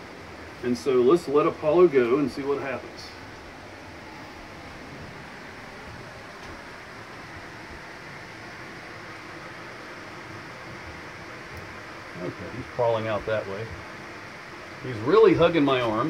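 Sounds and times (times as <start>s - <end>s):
outdoor ambience hiss: 0.0s - 16.0s.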